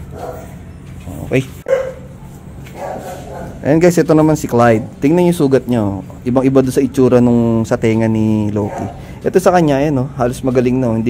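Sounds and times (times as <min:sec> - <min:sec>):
puppy yipping: 0:00.1 - 0:00.6, 0:01.6 - 0:03.6, 0:08.6 - 0:09.0.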